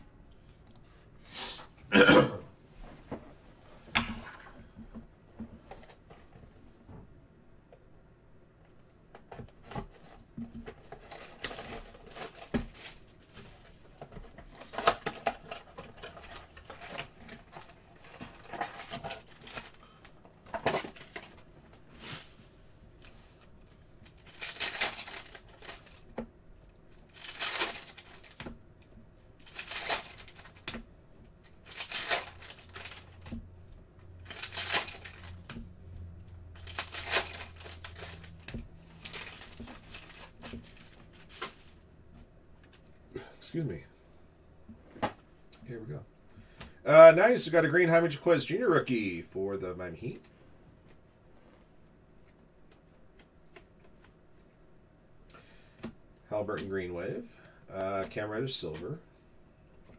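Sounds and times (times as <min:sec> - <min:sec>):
foil packs crinkling and ripping: 0:10.8 - 0:13.4, 0:14.6 - 0:21.4, 0:24.0 - 0:26.1, 0:26.7 - 0:28.6, 0:29.4 - 0:30.8, 0:31.5 - 0:33.4, 0:34.2 - 0:35.6, 0:36.4 - 0:41.8.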